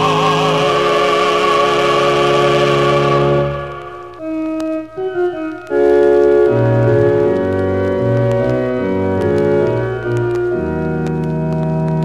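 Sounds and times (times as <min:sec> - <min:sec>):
choir and orchestra sustained chord: 0:00.0 - 0:04.2.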